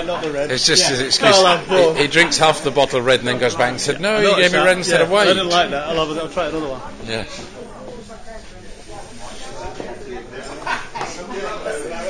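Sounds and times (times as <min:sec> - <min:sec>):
faint voices talking: 0:00.0 - 0:12.0
steady background noise: 0:00.0 - 0:12.0.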